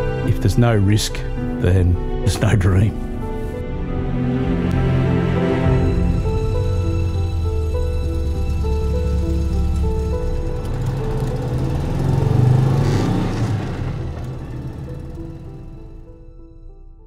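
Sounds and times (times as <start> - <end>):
gentle background music: 0.0 - 17.0
van engine driving past: 4.8 - 16.3.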